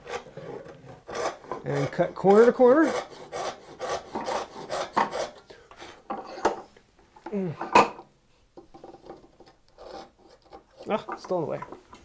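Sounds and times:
hand saw rasping through wood: 0:00.0 - 0:05.4, 0:09.8 - 0:11.1.

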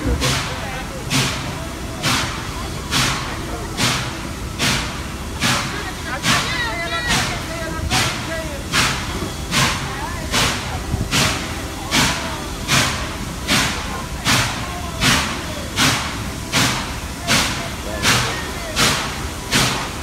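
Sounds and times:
steady rumble: 0:00.0 - 0:20.0
steam locomotive exhaust chuffs: 0:00.0 - 0:20.0.

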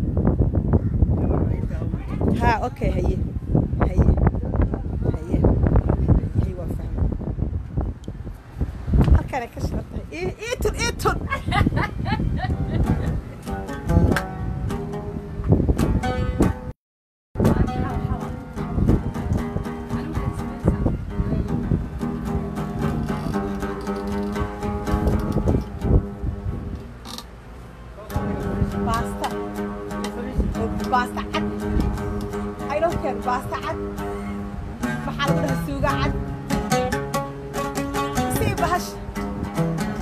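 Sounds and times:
wind buffeting microphone: 0:00.0 - 0:16.7, 0:17.4 - 0:27.2, 0:28.1 - 0:40.0
oud playing: 0:11.7 - 0:16.7, 0:17.4 - 0:27.4, 0:28.1 - 0:40.0.

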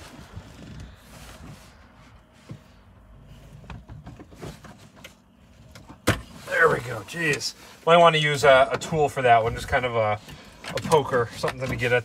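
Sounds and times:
faint rustling: 0:00.0 - 0:08.6.

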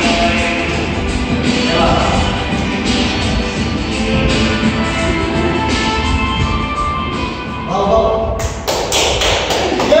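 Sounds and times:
hands clapping: 0:08.4 - 0:10.0.

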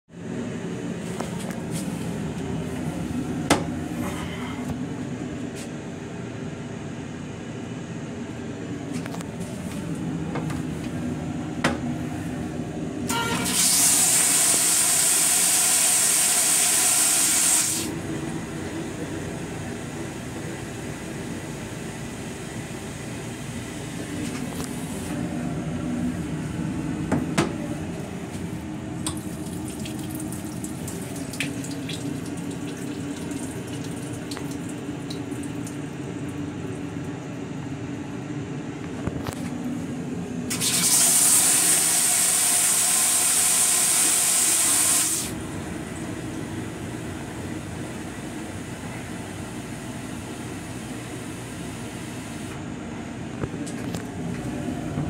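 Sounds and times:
train low rumble: 0:00.1 - 0:13.4, 0:17.9 - 0:35.1, 0:52.6 - 0:55.0
toilet flushing with hiss: 0:13.1 - 0:18.0, 0:40.5 - 0:45.4, 0:49.6 - 0:52.6
faucet running into metal basin: 0:13.2 - 0:17.9.

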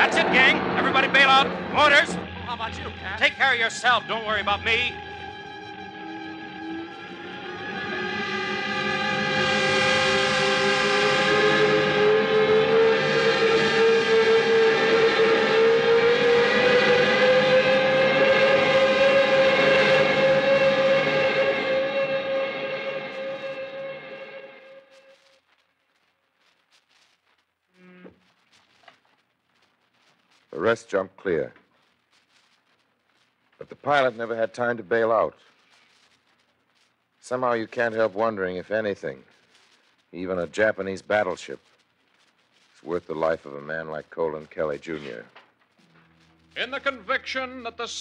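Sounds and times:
dense sustained tones: 0:00.0 - 0:25.4
rising whine: 0:00.0 - 0:25.4.

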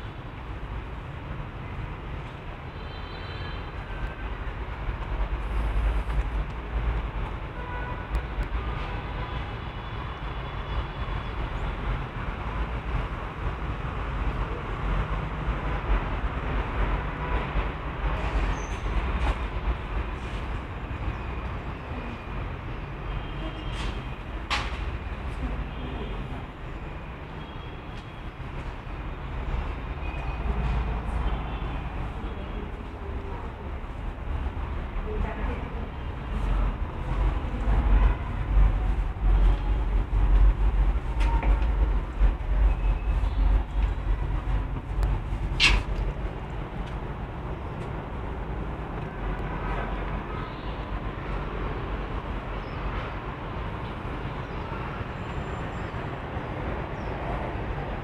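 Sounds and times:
distant city traffic rumble: 0:00.0 - 0:58.0
sharp click: 0:45.6 - 0:46.1.

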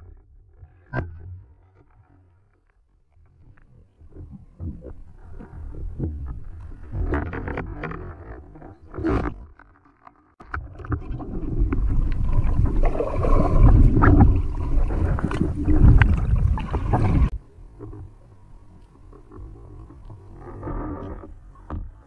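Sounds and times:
clicks and knocks underwater: 0:00.0 - 0:18.1, 0:18.8 - 0:22.0
loud underwater water noise: 0:10.4 - 0:21.7.

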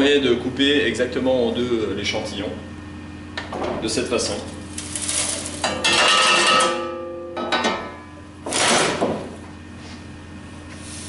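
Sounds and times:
metal pans clattering: 0:05.6 - 0:08.0.

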